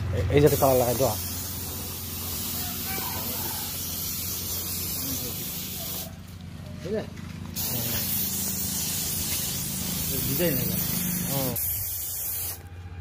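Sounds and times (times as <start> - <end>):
spray gun hissing: 0.4 - 6.2, 7.6 - 12.6.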